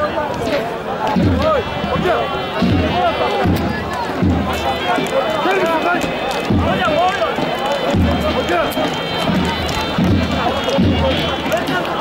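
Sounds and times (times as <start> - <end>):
shrill reed melody: 0.9 - 12.0.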